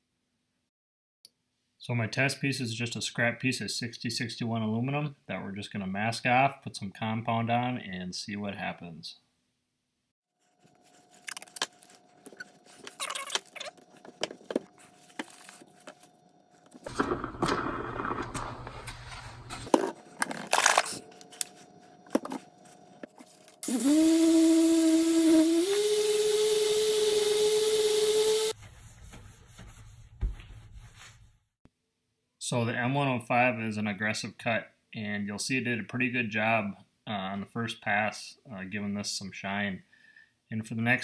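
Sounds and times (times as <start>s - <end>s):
polisher motor whining: 23.6s - 28.5s.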